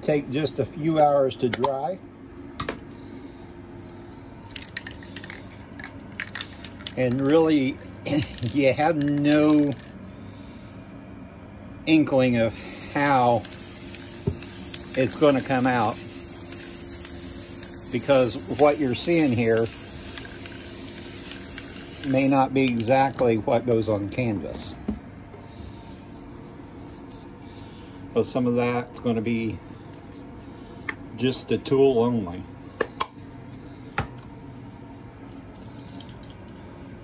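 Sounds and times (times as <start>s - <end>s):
low background hum: 0.0s - 37.0s
spray paint can hissing: 12.6s - 22.5s.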